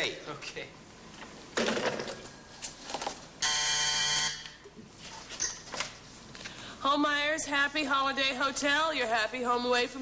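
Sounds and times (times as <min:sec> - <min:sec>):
harsh call buzzer: 0:03.4 - 0:04.6.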